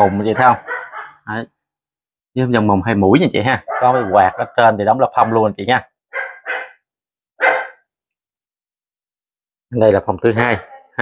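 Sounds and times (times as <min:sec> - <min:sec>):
dog barking: 0:00.0 - 0:01.4, 0:03.6 - 0:07.9, 0:10.4 - 0:11.0.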